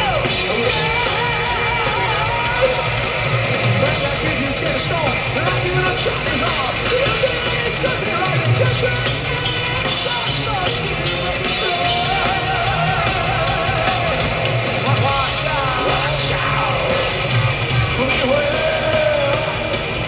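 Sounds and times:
live heavy metal band: 0.0 - 20.0.

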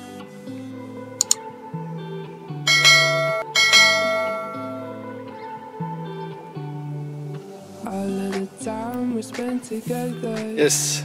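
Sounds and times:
background music: 0.0 - 11.0
bright notification bell ringing: 2.7 - 4.8.

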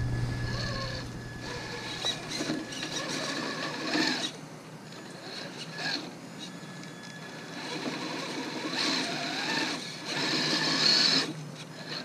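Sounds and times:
toy truck electric motor whining: 0.5 - 12.0.

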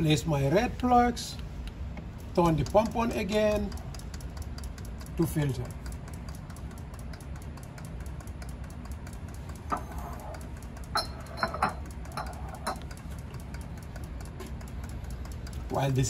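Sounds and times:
pump humming and ticking: 0.0 - 16.0
bottles and fittings clicking: 2.3 - 16.0.

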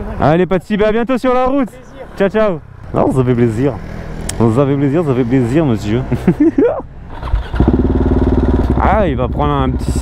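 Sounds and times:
motorcycle engine: 1.6 - 10.0.

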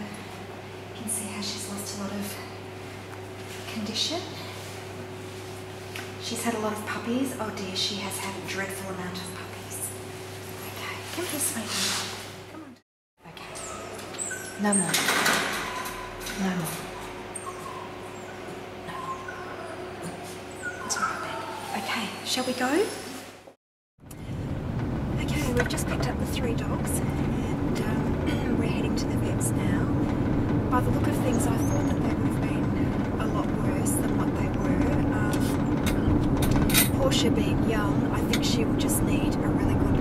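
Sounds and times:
small dog whimpering: 15.6 - 22.4
car interior road and engine noise: 24.1 - 40.0.

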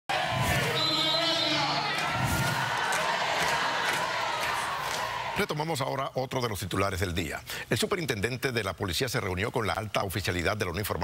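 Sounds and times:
man shouting through loudspeaker: 0.1 - 2.0
crowd noise: 0.1 - 5.7.

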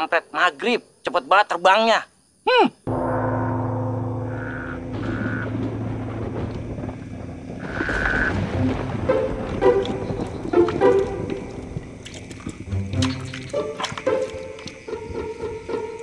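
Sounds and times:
short pitched notes: 2.9 - 6.6
low drone with held tones: 2.9 - 7.3.

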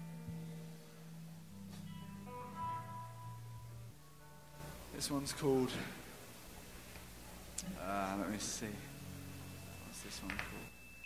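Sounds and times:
guitar single notes ringing: 1.6 - 6.2, 7.6 - 11.0.

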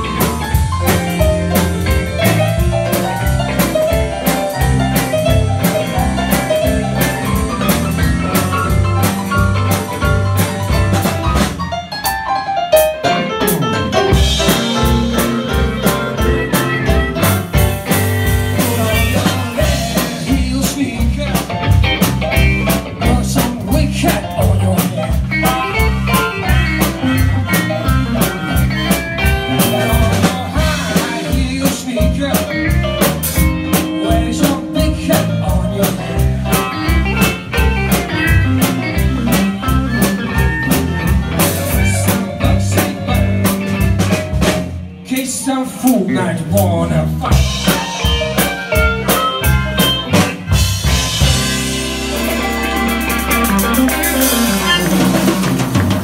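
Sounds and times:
blues band playing: 0.0 - 56.0.

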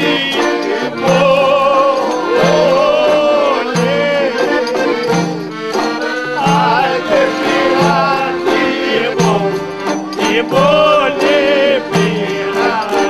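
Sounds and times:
man singing: 0.0 - 13.0
plucked lute: 0.0 - 13.0.

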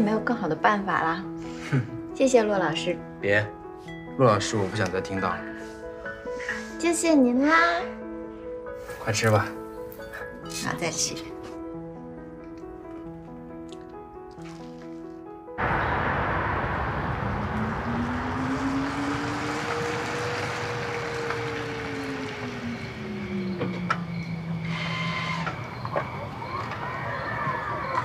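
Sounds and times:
soft background music: 0.0 - 15.6
car driving on wet street: 15.6 - 24.7.

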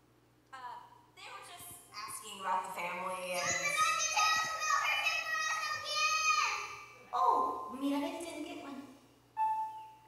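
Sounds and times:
children's voices calling: 3.3 - 7.0.

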